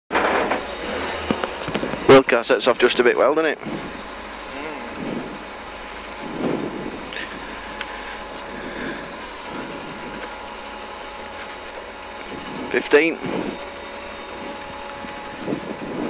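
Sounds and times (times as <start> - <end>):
car engine idling: 0.1 - 16.0.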